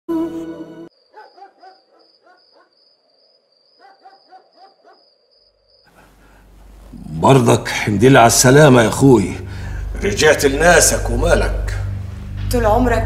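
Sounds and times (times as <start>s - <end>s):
loud music chord: 8.3s - 13.0s.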